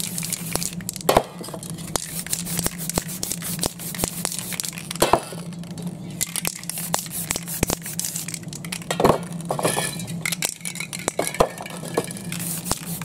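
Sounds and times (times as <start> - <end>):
spray can hissing: 0.0 - 0.8, 1.9 - 4.9, 6.5 - 8.4, 12.1 - 13.0
steady low hum: 0.0 - 13.0.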